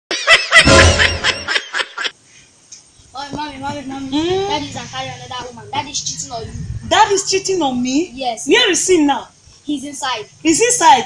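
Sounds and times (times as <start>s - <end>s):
laughter sound effect: 0.1s - 2.1s.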